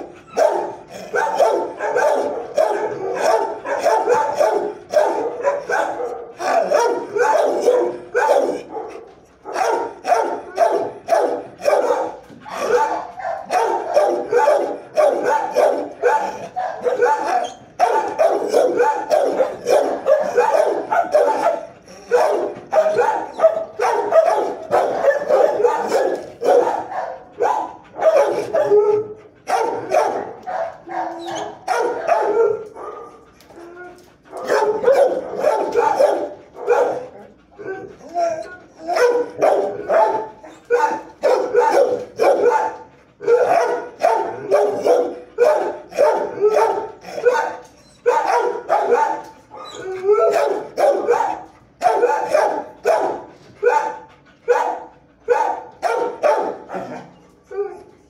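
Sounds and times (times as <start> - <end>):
dogs barking: 0.0 - 57.1.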